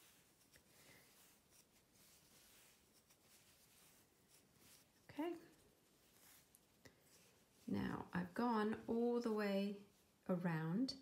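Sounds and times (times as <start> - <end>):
yarn rustling on crochet hook: 0.0 - 10.7.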